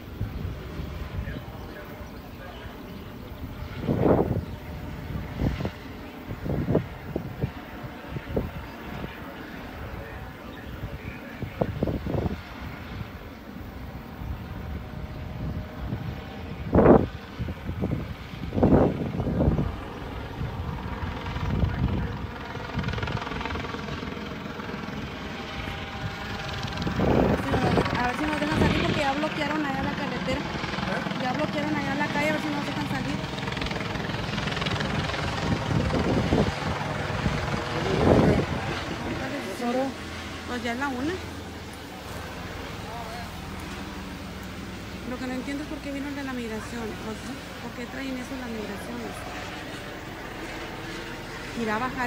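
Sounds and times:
helicopter flying overhead: 0.0s - 52.0s.

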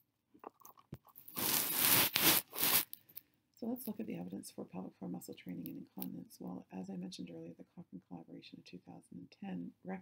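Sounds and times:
rough scraping crunching: 1.2s - 2.9s.

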